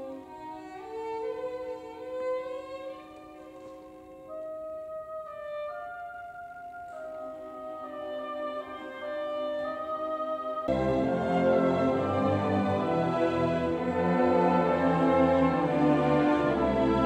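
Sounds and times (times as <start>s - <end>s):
orchestra playing slow chords: 6.0s - 17.0s.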